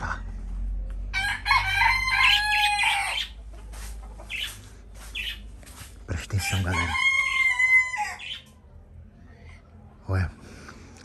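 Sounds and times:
rooster crowing: 1.1s - 3.4s, 6.3s - 8.3s.

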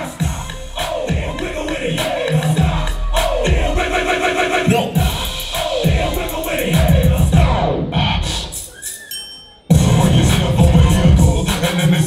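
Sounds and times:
hip-hop dance track over speakers: 0.0s - 12.0s.

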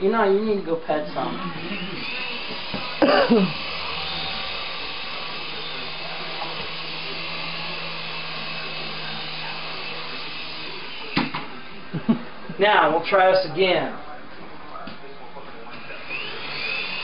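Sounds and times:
toy helicopter rotors whirring: 1.6s - 11.2s, 16.1s - 17.0s.

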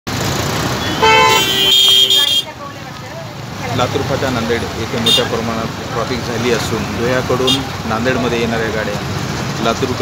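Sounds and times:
idling traffic noise: 0.1s - 10.0s
short horn blast: 0.8s - 2.4s
higher-pitched car horn: 0.8s - 2.5s.

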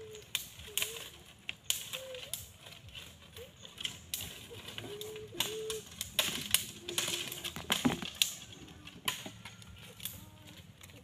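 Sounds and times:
dry sticks snapping: 0.0s - 11.0s
poles knocking against branches: 0.0s - 11.0s.

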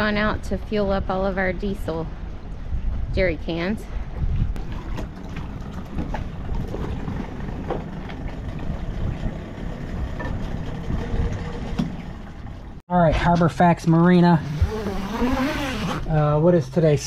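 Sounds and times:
outboard motor running: 4.6s - 12.8s.

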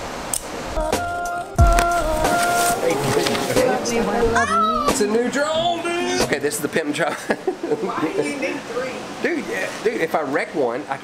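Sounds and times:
packaging rustling and crinkling: 1.6s - 3.6s.

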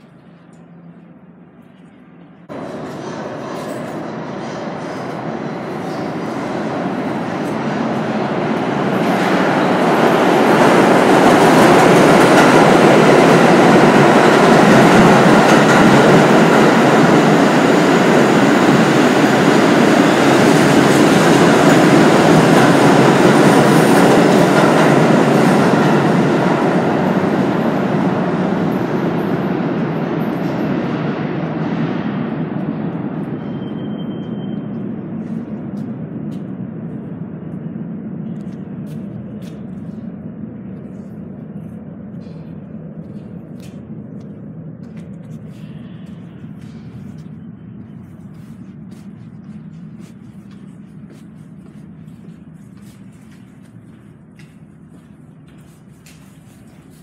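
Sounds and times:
subway train rumbling: 0.0s - 57.0s.

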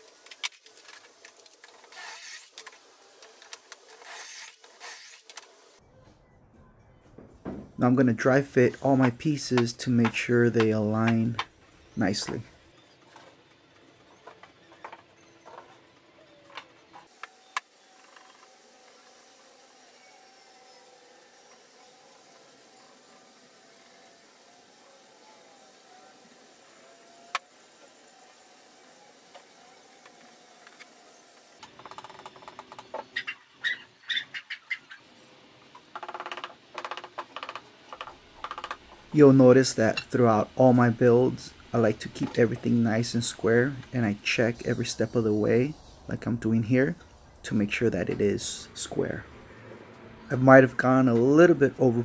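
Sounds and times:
wooden pieces knocking: 35.8s - 38.9s.

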